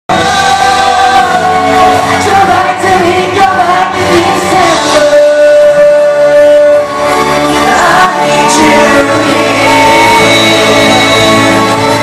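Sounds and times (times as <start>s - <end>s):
male vocal group singing live: 0.1s - 12.0s
pop music: 0.1s - 12.0s.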